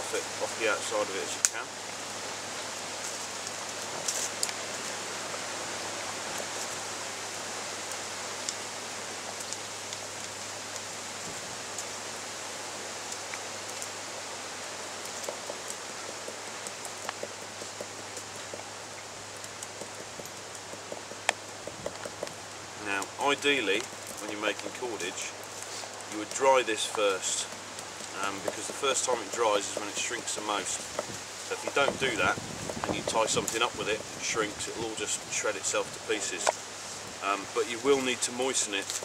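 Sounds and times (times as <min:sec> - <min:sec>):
steady hiss: 0:00.0 - 0:39.0.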